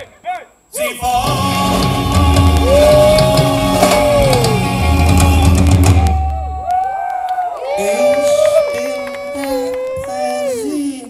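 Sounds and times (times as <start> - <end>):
live rock band: 1.1 - 6.5
crowd whistling and shouting: 2.4 - 10.6.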